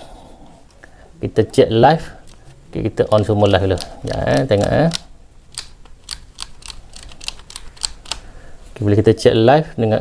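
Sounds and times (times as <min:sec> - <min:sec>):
circuit breakers clicking: 0:03.1 - 0:08.2.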